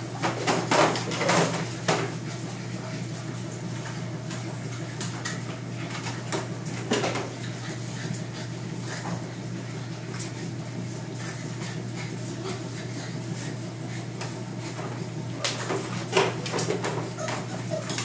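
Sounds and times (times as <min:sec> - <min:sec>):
dogs scuffling: 0:00.1 - 0:18.0
puppy yelp: 0:16.6 - 0:18.0.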